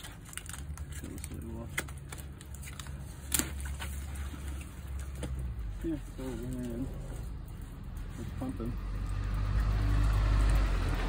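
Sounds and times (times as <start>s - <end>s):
water pump humming: 3.4s - 11.0s.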